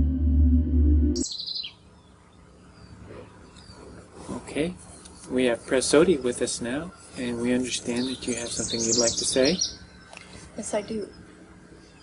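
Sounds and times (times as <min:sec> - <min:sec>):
ambient music drone: 0:00.0 - 0:01.3
quiet outdoor background: 0:00.0 - 0:12.0
bird chirping: 0:01.2 - 0:04.0, 0:04.9 - 0:12.0.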